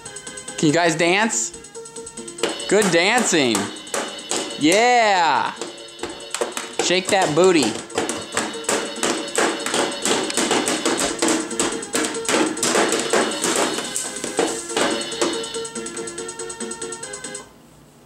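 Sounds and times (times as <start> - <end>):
toy drum set music track: 2.2 - 17.4.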